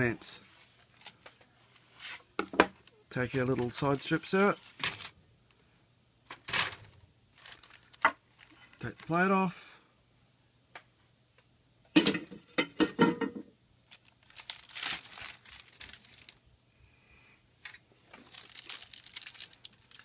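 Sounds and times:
baking paper rustling: 0:00.3 - 0:05.2, 0:06.6 - 0:09.2, 0:13.9 - 0:16.4, 0:18.0 - 0:20.0.

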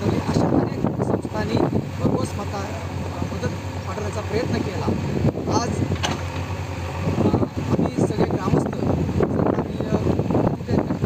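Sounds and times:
man speaking: 0:00.0 - 0:05.9, 0:06.9 - 0:11.0
steady low rumble: 0:00.0 - 0:11.0.

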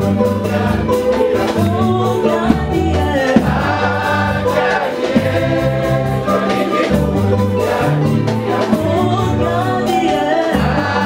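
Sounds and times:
bass line: 0:00.0 - 0:09.8
choir singing a hymn: 0:00.0 - 0:11.0
drum hits: 0:02.4 - 0:09.1.

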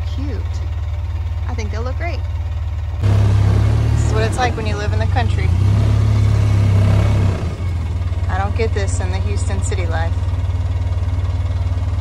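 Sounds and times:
utility vehicle engine running: 0:00.0 - 0:12.0.

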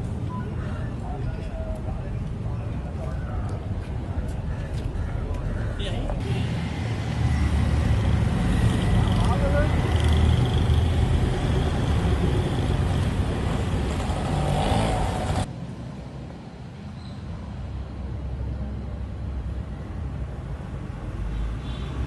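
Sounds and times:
vehicle engines rumbling: 0:00.0 - 0:22.0.

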